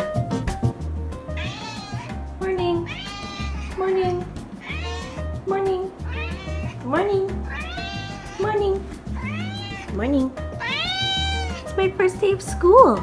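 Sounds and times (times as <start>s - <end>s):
cat meowing: 1.3s - 11.8s.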